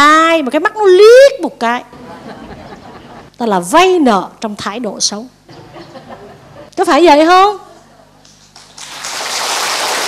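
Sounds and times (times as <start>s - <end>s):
audience applause: 8.6s - 10.0s.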